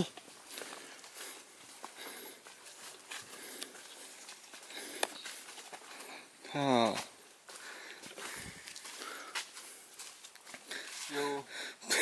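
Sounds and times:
footsteps on leafy dirt trail: 0.0s - 11.8s.

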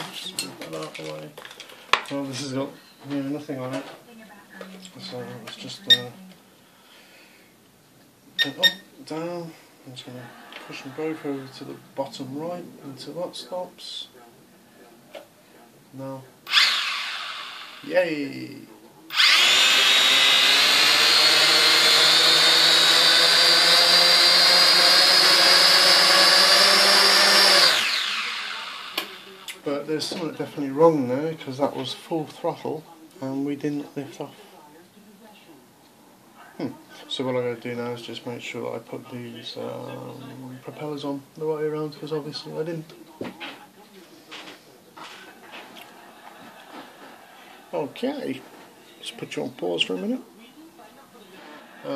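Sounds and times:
quadcopter motors whining: 16.5s - 17.8s, 19.1s - 29.5s.

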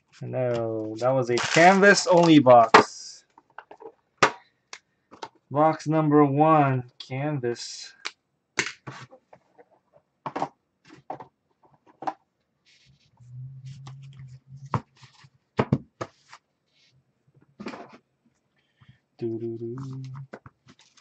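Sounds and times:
trading cards tapping and riffling: 0.5s - 4.0s
person humming: 13.2s - 14.7s.

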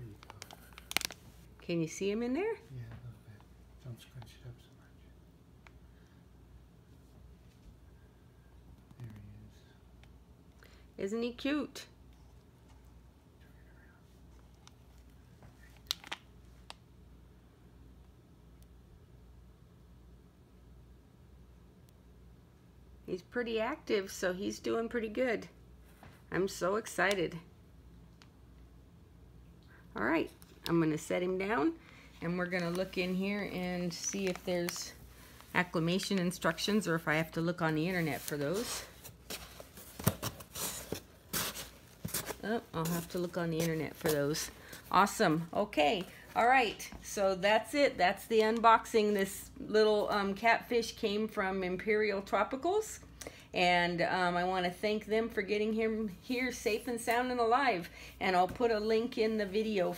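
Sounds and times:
paper packing rustling: 38.0s - 44.8s.

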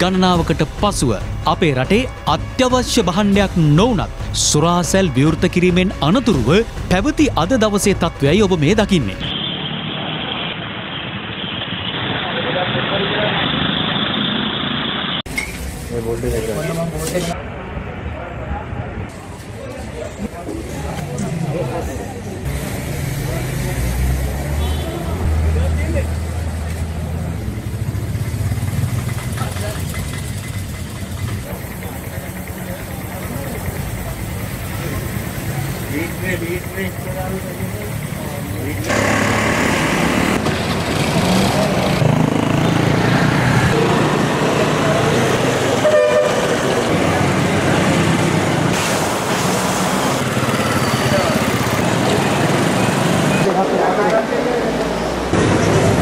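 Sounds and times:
traffic with engines running: 0.0s - 56.0s
crowd talking: 15.6s - 28.7s, 29.3s - 39.4s, 40.0s - 56.0s
car horn toot: 24.6s - 25.3s, 45.8s - 46.7s.

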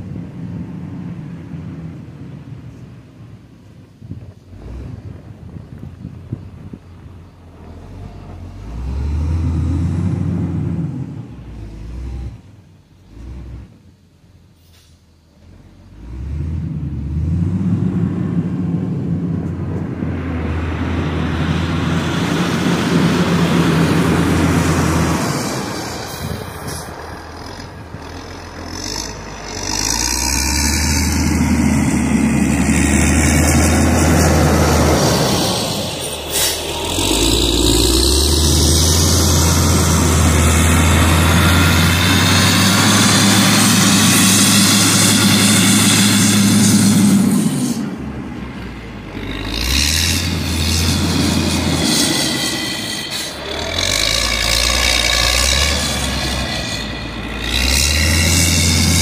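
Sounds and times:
diesel engine under load: 0.0s - 59.0s.

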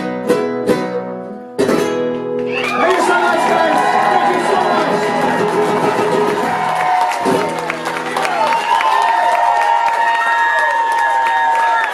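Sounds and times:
acoustic guitar strummed hard: 0.0s - 8.2s
audience cheering: 2.5s - 11.9s.

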